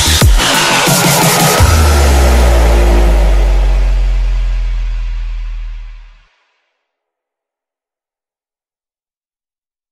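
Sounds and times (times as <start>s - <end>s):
kick drums: 0.0s - 3.5s
long low bass note: 1.2s - 6.2s.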